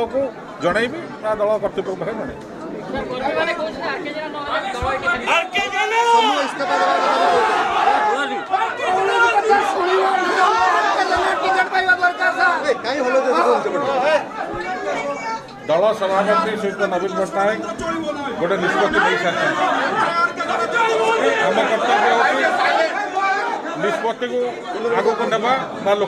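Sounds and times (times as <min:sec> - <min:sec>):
people talking at once: 0:00.0 - 0:26.0.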